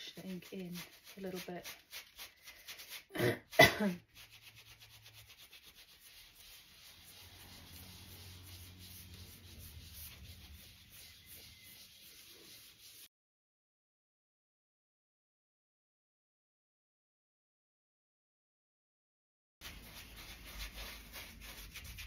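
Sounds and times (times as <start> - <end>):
cloth rubbing on a plate: 0.0 - 13.1, 19.6 - 22.0.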